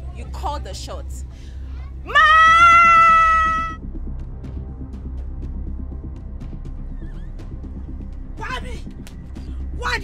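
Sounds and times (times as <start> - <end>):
woman shouting: 2.1 - 3.8.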